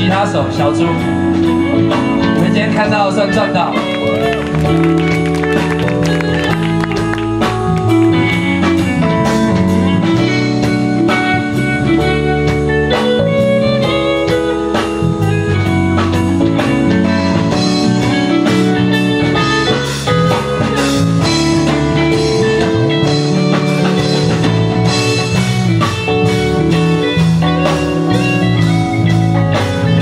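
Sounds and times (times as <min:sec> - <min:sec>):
electric guitar lead: 0:00.0 - 0:30.0
live band playing: 0:00.0 - 0:30.0.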